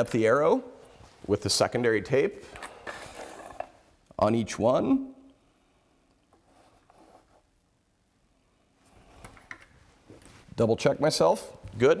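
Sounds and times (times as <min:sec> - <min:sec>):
soft handling sounds: 0:06.0 - 0:07.7, 0:08.8 - 0:10.8.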